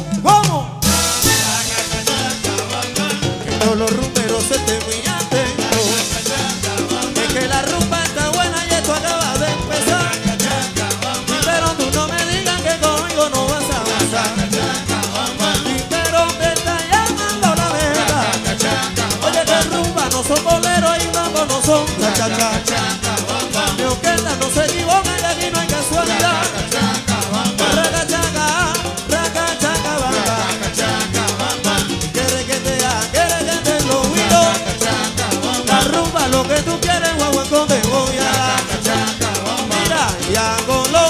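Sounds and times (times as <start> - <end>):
bass line: 0.0 - 41.0
drums and percussion: 0.0 - 41.0.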